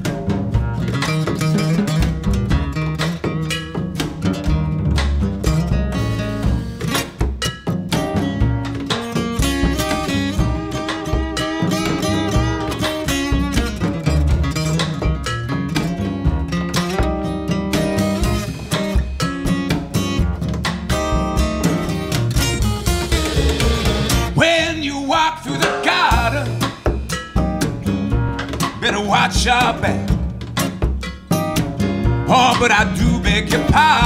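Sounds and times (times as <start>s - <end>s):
drum kit steady beat: 0.0s - 34.0s
plucked upright double bass: 0.0s - 34.0s
strummed acoustic guitar: 0.0s - 34.0s
bending melodic line: 7.5s - 30.1s.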